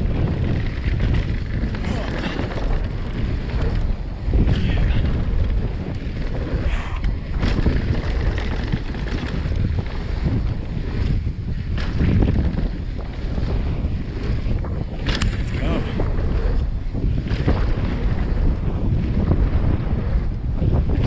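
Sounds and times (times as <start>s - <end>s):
bike rattling over bumps: 0.0s - 21.0s
bike tyres rolling on dirt: 0.0s - 21.0s
wind buffeting microphone: 0.0s - 21.0s.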